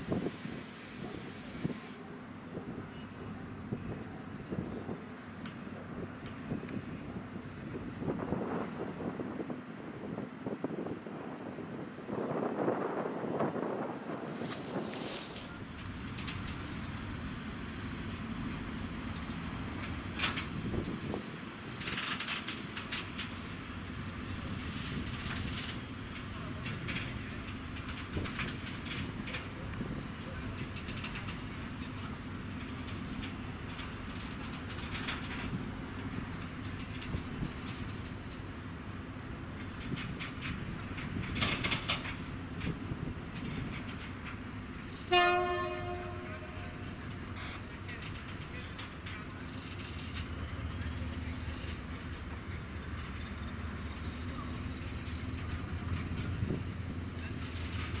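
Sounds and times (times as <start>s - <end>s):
diesel locomotive running: 0.0s - 58.0s
loud train horn blast: 45.0s - 47.6s.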